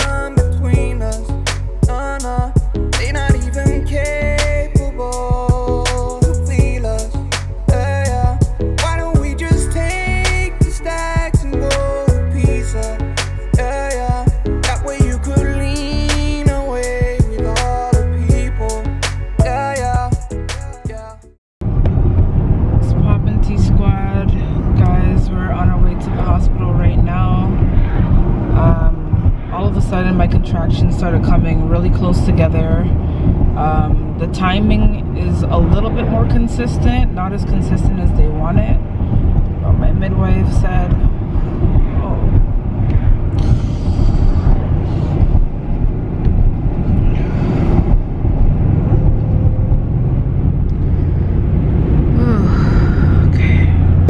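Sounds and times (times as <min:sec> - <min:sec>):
car cabin road rumble: 0:00.0 - 0:21.0, 0:21.6 - 0:54.0
woman talking: 0:22.8 - 0:27.5, 0:28.6 - 0:32.9, 0:33.6 - 0:38.8
woman breathing heavily: 0:42.8 - 0:45.5, 0:47.0 - 0:48.0, 0:50.8 - 0:54.0.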